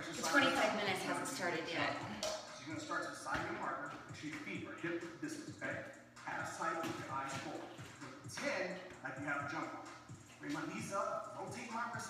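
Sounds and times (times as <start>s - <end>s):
person talking: 0.0s - 2.2s.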